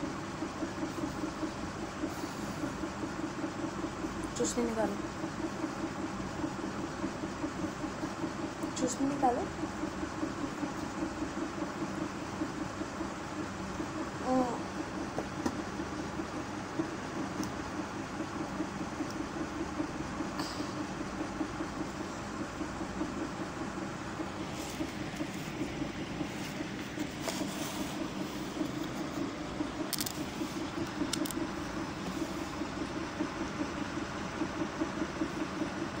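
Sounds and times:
low mechanical hum with flutter: 0.0 - 36.0.

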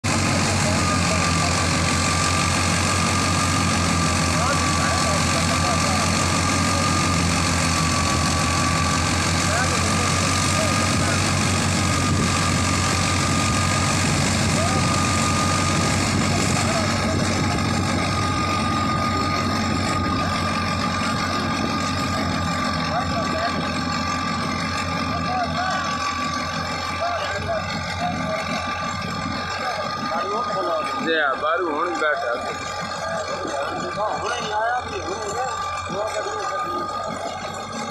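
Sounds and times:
thresher high whine: 0.0 - 37.9
tractor diesel engine drone: 0.0 - 37.9.

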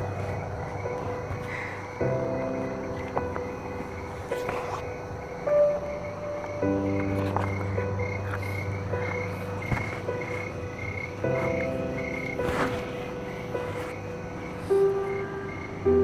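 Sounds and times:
soft music of slow held chords: 0.0 - 16.0.

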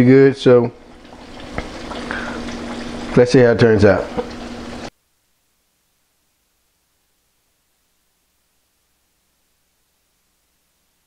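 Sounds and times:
chicken frying in oil: 0.0 - 4.9.

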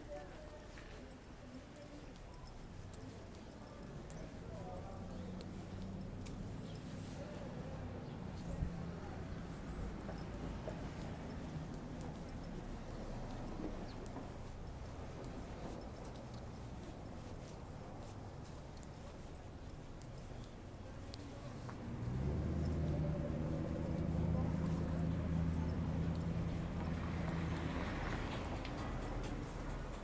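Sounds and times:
traffic rumble: 0.0 - 30.0
vehicle engine hum: 2.5 - 30.0.

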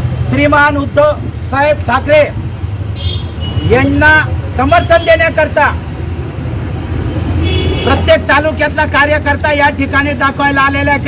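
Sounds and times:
man narrating: 0.2 - 2.4, 3.6 - 5.9, 7.8 - 11.0.

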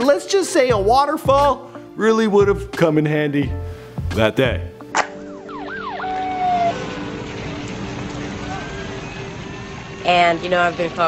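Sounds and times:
emergency vehicle siren: 5.0 - 11.0.

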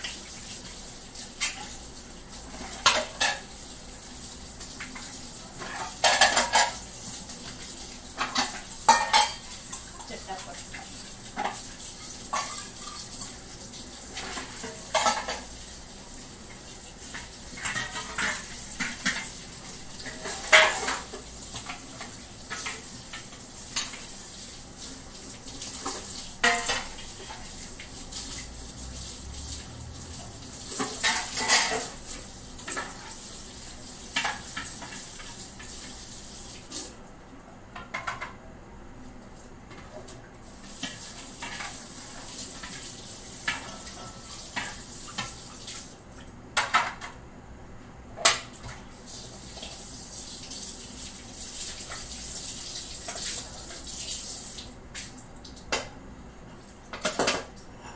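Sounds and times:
metal dishes clinking and clattering: 2.5 - 3.5, 5.6 - 6.8, 8.2 - 9.9, 12.3 - 13.0, 14.2 - 15.5, 17.6 - 19.4, 20.1 - 22.7, 25.8 - 27.4, 30.8 - 32.0, 43.5 - 44.8, 56.9 - 57.9.

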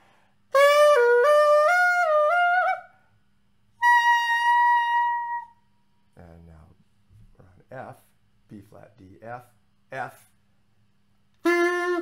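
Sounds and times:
pocket sax playing: 0.5 - 2.9, 3.8 - 5.6, 11.4 - 12.0.

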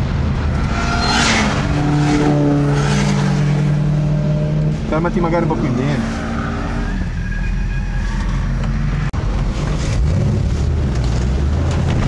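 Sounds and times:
car engine accelerating: 0.0 - 6.9.

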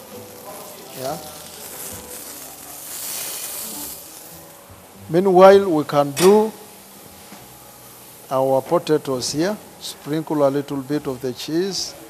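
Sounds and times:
meat sizzling on a griddle: 0.0 - 12.0.

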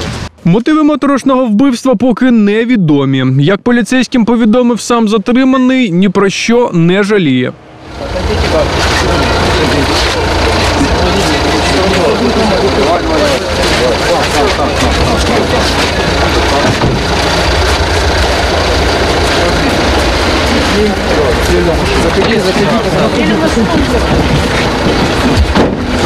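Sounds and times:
low vehicle engine rumble: 7.1 - 26.0
crowd voices talking: 7.2 - 26.0.

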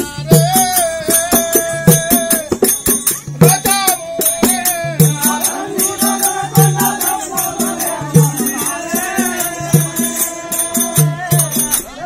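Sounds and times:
hand drum beating fast rhythm: 0.0 - 11.9.

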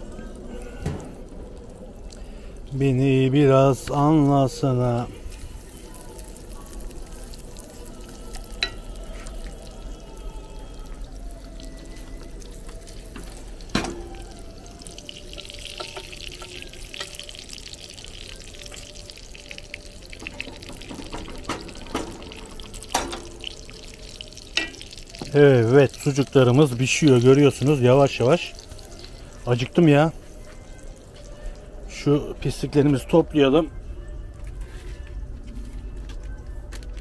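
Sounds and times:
meat sizzling in a pan: 3.0 - 31.0.

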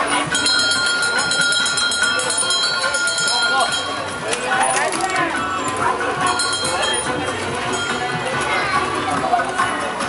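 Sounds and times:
small metal bell ringing: 0.0 - 4.7, 6.2 - 8.4
faint voices of passers-by: 0.0 - 10.0.

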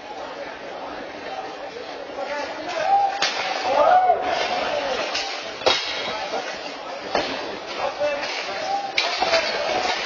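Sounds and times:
people shouting: 2.8 - 5.0.

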